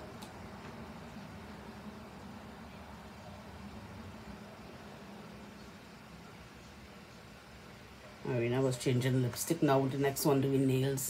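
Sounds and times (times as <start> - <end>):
faint appliance hum and hiss: 0.0 - 11.0.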